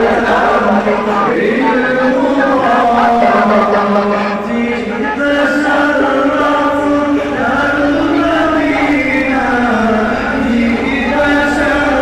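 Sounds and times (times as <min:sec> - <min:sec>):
men chanting a devotional song: 0:00.0 - 0:12.0.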